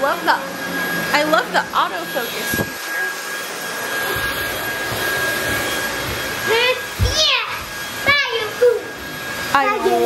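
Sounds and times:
vacuum cleaner running: 0:00.0 - 0:10.0.

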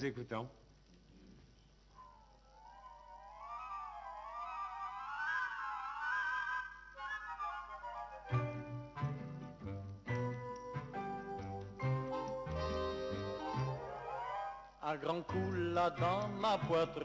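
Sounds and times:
orchestra with bass: 0:07.8 - 0:14.3, 0:14.9 - 0:17.0
high melody with vibrato: 0:10.5 - 0:14.1.

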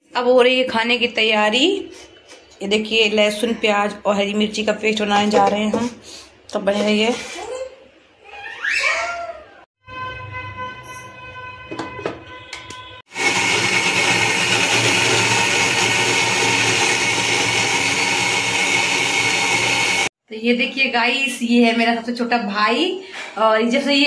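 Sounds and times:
electric mixer grinder running: 0:13.1 - 0:20.1.

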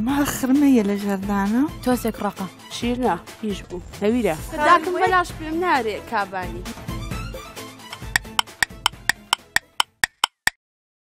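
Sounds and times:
clock ticking sound effect: 0:08.0 - 0:10.6.

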